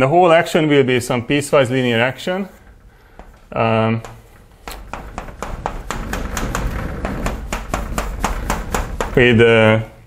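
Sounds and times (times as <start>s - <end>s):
chalk tapping on chalkboard: 7.1s - 9.3s.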